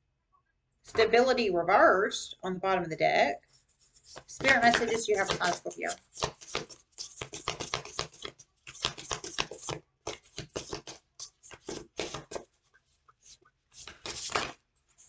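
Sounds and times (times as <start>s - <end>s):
cards being shuffled: 4.0s - 12.5s, 13.2s - 15.0s.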